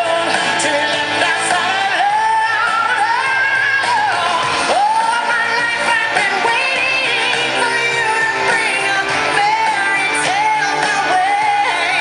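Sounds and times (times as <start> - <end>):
music with singing voice: 0.0 - 12.0.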